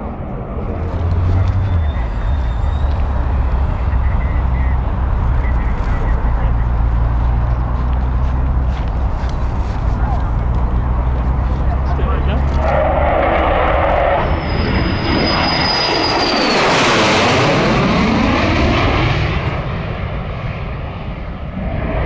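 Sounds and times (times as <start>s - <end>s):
high engine whine: 0.0s - 22.0s
jet engines roaring: 0.0s - 22.0s.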